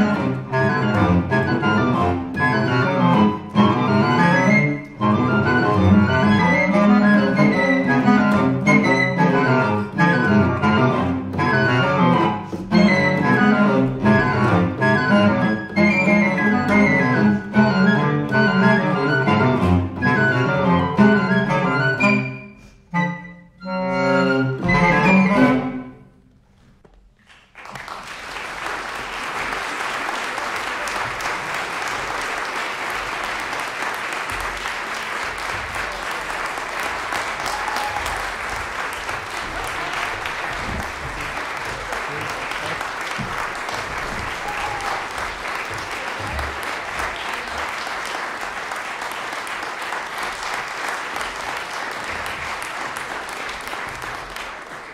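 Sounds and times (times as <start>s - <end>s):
audience applause: 27.2s - 54.9s.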